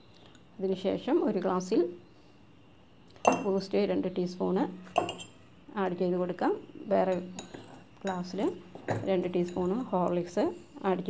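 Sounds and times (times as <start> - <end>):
woman talking: 0.6 - 2.0, 3.3 - 4.9, 5.7 - 7.3, 8.0 - 11.0
metal spoon clinking glass mugs: 3.2 - 3.5, 4.9 - 5.4, 7.1 - 9.9.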